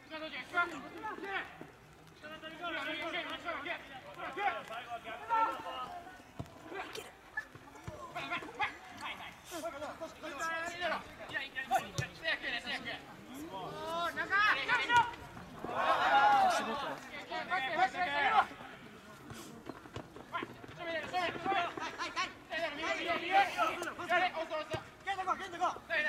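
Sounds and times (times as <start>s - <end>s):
footballers shouting calls: 0.0s - 26.0s.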